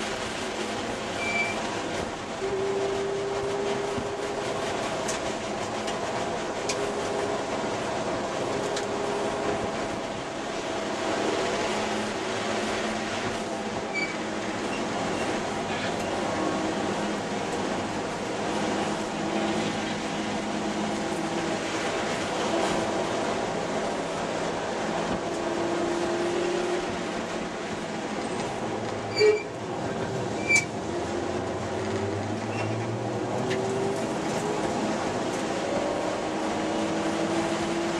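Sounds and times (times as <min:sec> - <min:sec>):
road and wind noise: 0:00.0 - 0:37.9.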